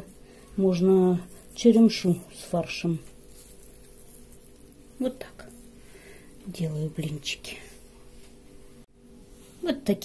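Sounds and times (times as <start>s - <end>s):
faint steady hum and hiss: 0.0s - 10.0s.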